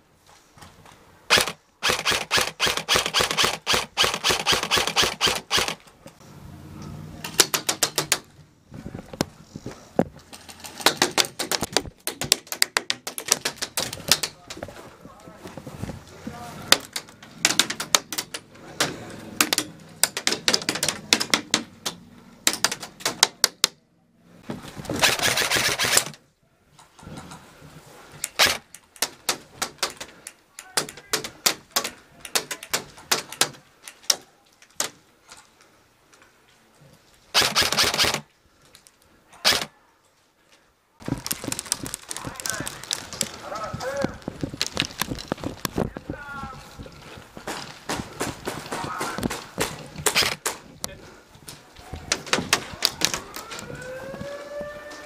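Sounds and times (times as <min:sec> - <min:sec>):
airsoft guns firing bursts: 0:01.3 - 0:05.8, 0:25.0 - 0:26.1, 0:37.4 - 0:38.3.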